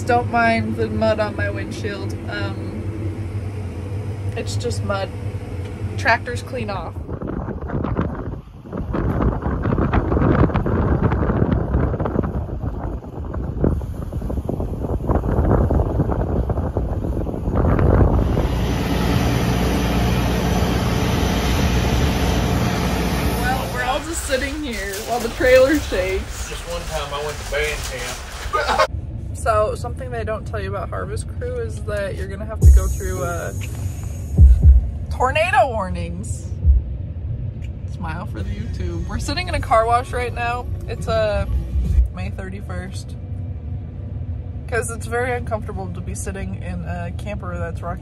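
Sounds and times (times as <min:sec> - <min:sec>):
voices: 0:00.0 - 0:02.9, 0:04.3 - 0:07.1, 0:23.4 - 0:33.8, 0:35.1 - 0:36.5, 0:37.9 - 0:41.5, 0:44.7 - 0:48.0
diesel engine humming: 0:00.0 - 0:48.0
wind buffeting microphone: 0:00.0 - 0:48.0.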